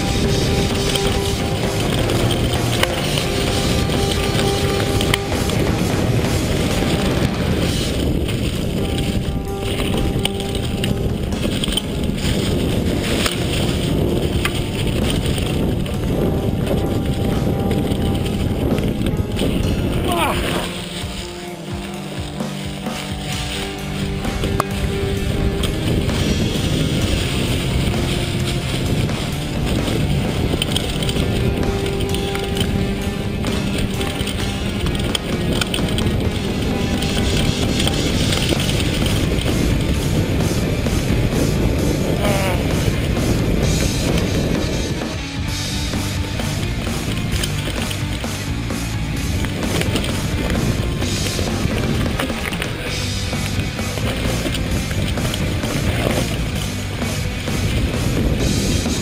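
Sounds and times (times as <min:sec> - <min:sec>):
mountain bike rolling and rattling: 0:00.0 - 0:59.0
music playing: 0:00.0 - 0:59.0.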